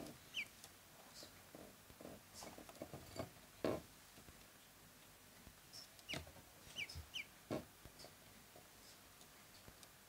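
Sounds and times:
ducklings peeping: 0.2 - 0.5, 5.7 - 7.4.

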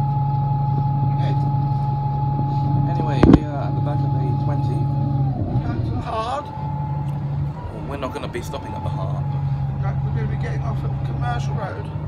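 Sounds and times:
bus engine hum: 0.0 - 12.0
engine whine: 0.0 - 12.0.

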